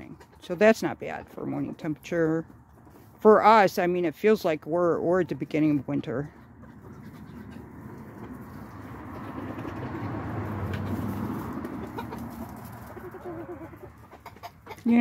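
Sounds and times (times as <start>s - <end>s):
chickens softly clucking: 6.3s - 15.0s.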